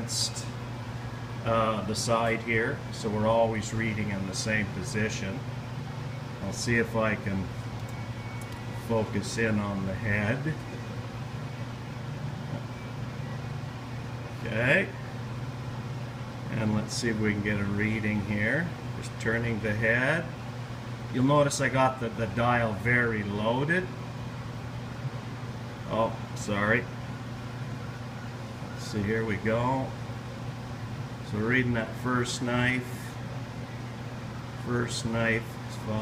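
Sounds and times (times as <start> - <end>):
low mechanical hum: 0.0 - 36.0
man speaking: 1.4 - 5.5, 6.4 - 7.6, 8.8 - 10.7, 14.4 - 15.0, 16.5 - 20.4, 28.8 - 30.0, 34.6 - 36.0.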